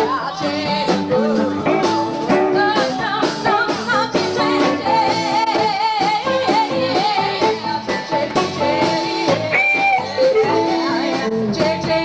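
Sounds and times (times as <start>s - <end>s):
guitar and drums: 0.0s - 12.0s
women singing together: 0.0s - 12.0s.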